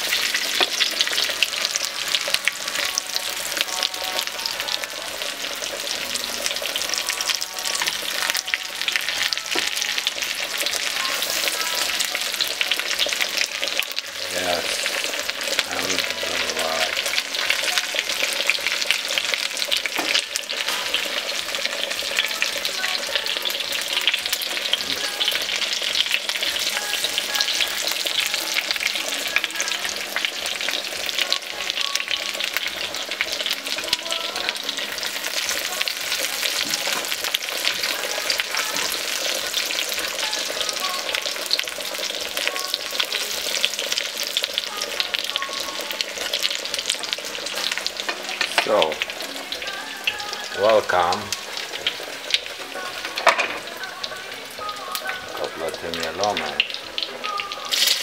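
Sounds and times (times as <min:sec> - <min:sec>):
patties sizzling in hot oil: 0:00.0 - 0:58.0.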